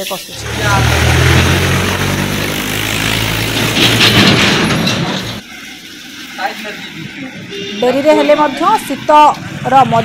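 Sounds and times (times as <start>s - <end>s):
vehicle engine running: 0.3s - 5.4s.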